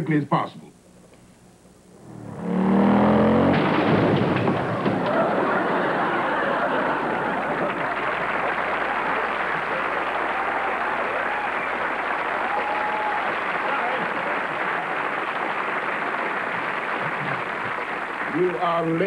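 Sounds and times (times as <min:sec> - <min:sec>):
audience applauding and cheering: 0:04.3 - 0:19.0.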